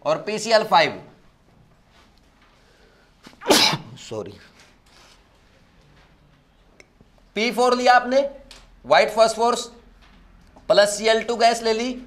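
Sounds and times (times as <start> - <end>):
man sneezing: 3.4 - 4.0.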